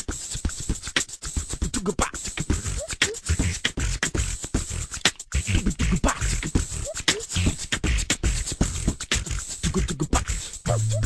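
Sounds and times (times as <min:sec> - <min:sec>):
person beatboxing: 0:00.0 - 0:11.0
hummed bass notes sliding: 0:10.7 - 0:11.0.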